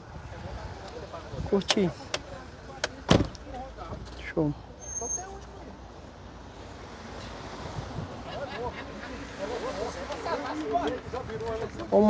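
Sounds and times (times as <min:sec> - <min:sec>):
car door thump: 0:03.0 - 0:03.4.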